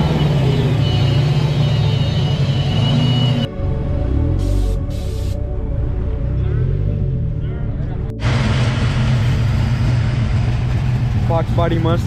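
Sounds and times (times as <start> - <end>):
low car engine hum: 0.0 - 12.0.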